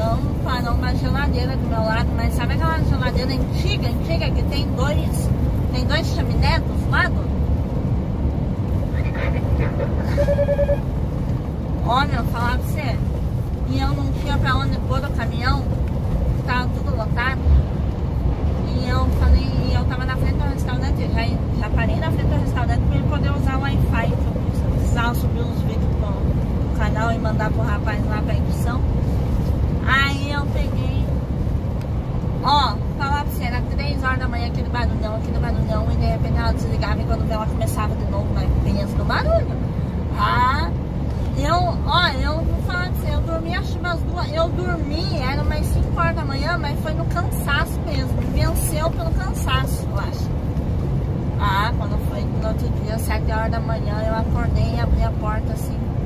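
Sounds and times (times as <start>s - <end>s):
woman talking: 0.0s - 7.3s, 11.8s - 15.8s, 16.4s - 17.4s, 18.6s - 28.9s, 29.8s - 31.1s, 32.4s - 50.3s, 51.4s - 55.9s
road noise: 0.0s - 56.0s
truck diesel engine drone: 0.0s - 56.0s.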